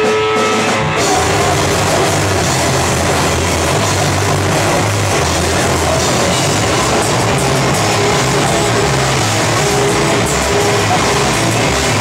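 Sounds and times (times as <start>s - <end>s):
loud metal band playing: 0.0s - 12.0s.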